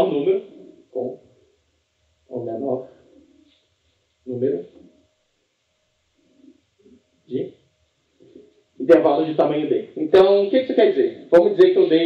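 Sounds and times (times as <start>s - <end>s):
man murmuring: 1.0s - 1.2s.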